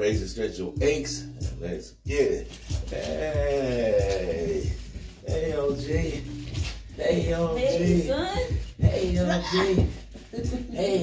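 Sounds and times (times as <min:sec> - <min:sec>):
music with vocals: 0:00.0 - 0:11.0.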